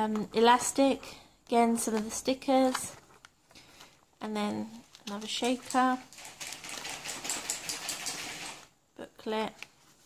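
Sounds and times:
sequins rattling in plastic shaker: 5.2 - 8.8.

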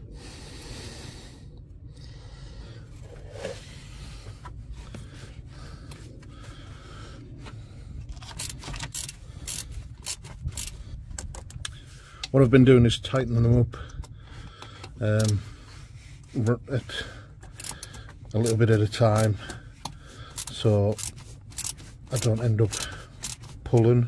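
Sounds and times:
low steady rumble: 0.0 - 24.0
hand tools clicking on metal: 8.2 - 11.8, 17.4 - 23.9.

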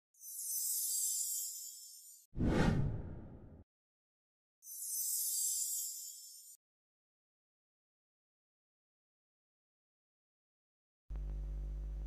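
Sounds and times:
downward whoosh: 2.4 - 3.4.

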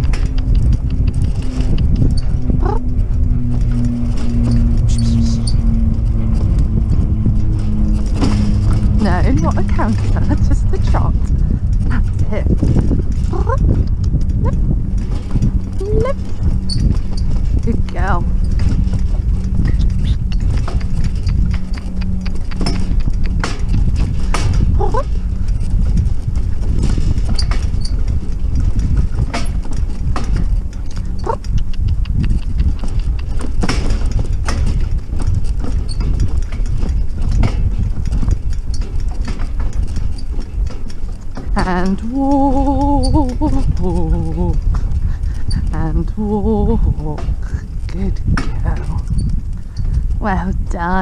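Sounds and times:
cart and harness clicks: 0.0 - 51.0
cart wheels rumbling: 0.0 - 51.0
pony hoofbeats: 0.0 - 51.0.

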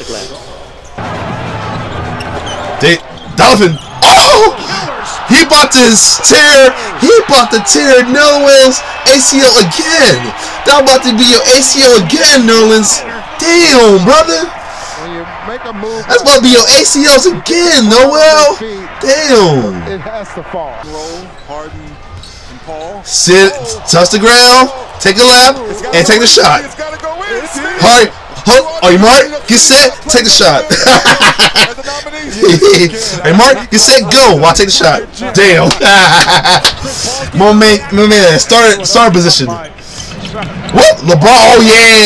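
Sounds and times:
arena crowd noise: 0.0 - 42.0
man speaking: 2.8 - 35.8, 36.8 - 39.7, 40.7 - 42.0.

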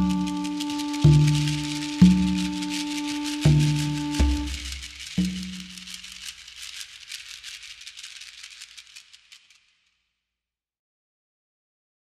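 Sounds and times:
shaker rhythm: 0.0 - 10.0.

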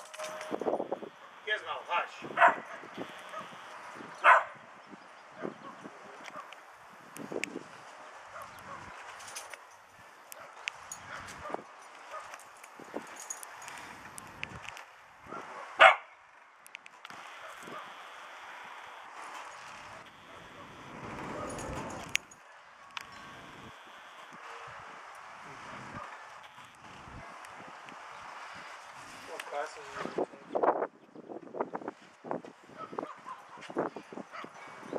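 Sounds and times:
dogs barking and yipping: 2.3 - 4.6, 5.3 - 6.6, 8.0 - 12.5, 15.2 - 16.1, 17.4 - 18.0, 19.8 - 22.7, 32.7 - 34.9
loud short dog bark: 2.4 - 3.6, 4.2 - 4.6, 15.3 - 16.1.

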